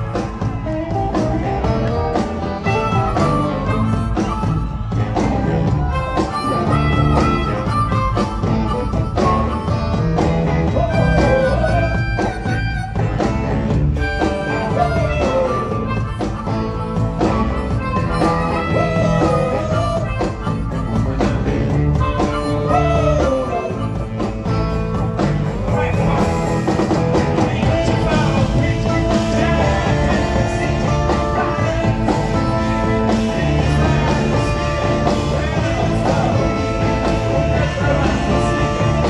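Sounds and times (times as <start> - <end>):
harmonica solo: 0.0 - 39.0
rock band playing: 0.0 - 39.0.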